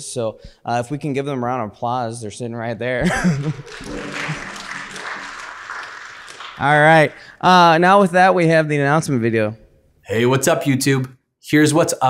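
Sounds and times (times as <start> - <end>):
congregation applauding: 3.2 - 7.6.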